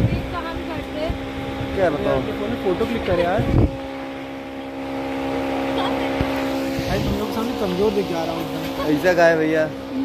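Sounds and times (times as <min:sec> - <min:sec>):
people talking: 0:00.0 - 0:01.2, 0:05.7 - 0:10.0
low mechanical hum: 0:00.0 - 0:10.0.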